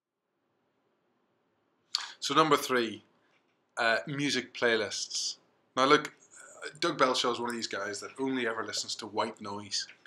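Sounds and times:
man speaking: 2.0 - 3.0, 3.8 - 10.0.

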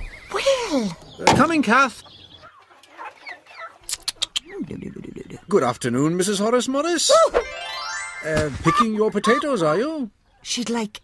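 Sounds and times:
chickens clucking: 0.0 - 6.7, 8.3 - 10.4.

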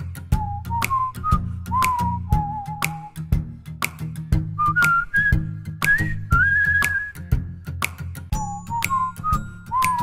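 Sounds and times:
bass line: 0.0 - 10.0
whistled melody: 0.2 - 7.5, 8.3 - 10.0
sharp clicking beat: 0.6 - 5.1.

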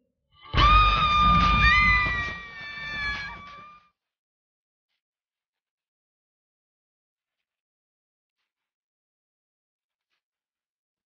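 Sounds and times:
high scream: 0.4 - 3.8
second higher scream: 0.5 - 3.8.

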